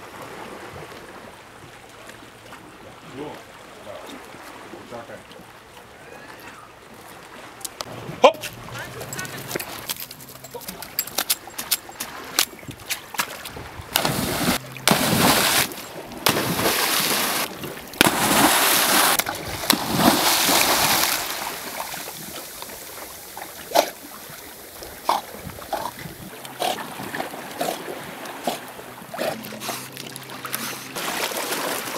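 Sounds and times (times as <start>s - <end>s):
water sloshing: 0.3s - 31.9s
dog splashing into water: 13.1s - 22.4s, 29.2s - 31.9s.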